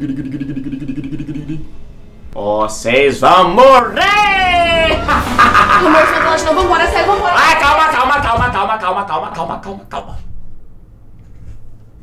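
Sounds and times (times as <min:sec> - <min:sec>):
low pulsing drone: 0:00.0 - 0:02.4, 0:03.4 - 0:07.8.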